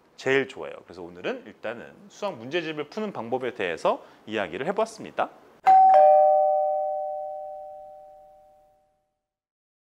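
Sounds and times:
two-note chime ringing: 5.7 - 8.9.

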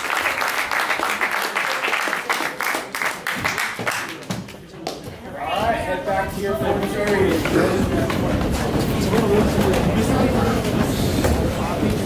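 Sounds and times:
overlapping voices of students: 0.0 - 5.0.

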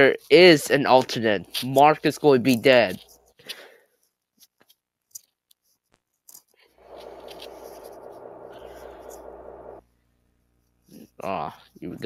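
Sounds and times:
buzzy electronic drone: 6.8 - 9.8.

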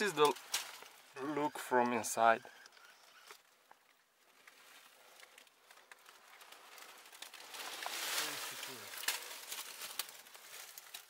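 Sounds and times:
dry leaves rustling: 0.0 - 2.2, 2.8 - 11.0.

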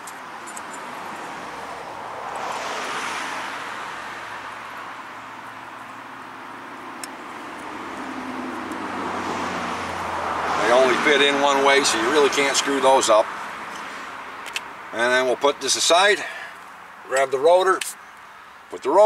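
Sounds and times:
vehicles passing: 0.0 - 19.0.

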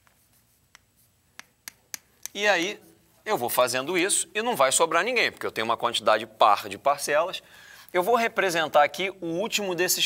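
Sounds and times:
chalk tapping on chalkboard: 0.0 - 2.4.

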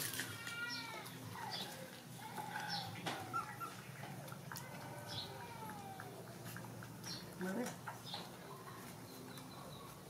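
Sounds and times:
puppies whining and squeaking: 0.1 - 10.0.

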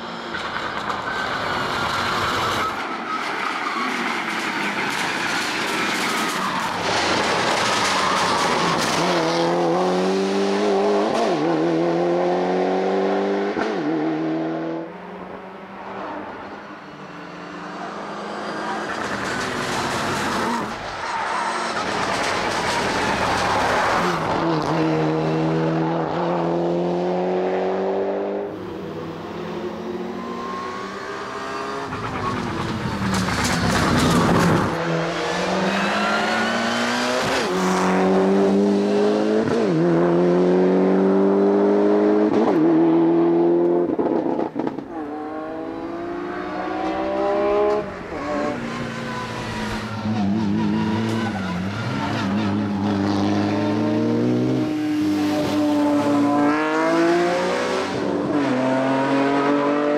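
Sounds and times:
race car engine accelerating: 23.4 - 59.9.

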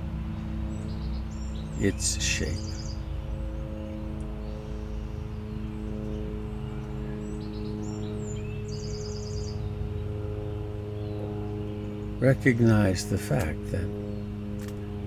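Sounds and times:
low drone of held tones: 0.0 - 15.0
bird chirping and trilling: 0.2 - 14.4.

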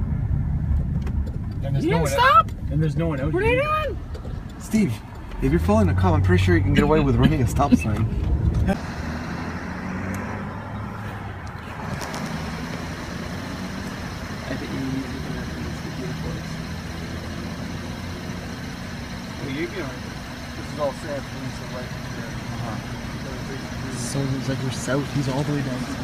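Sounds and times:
car engine idling: 0.0 - 26.0.

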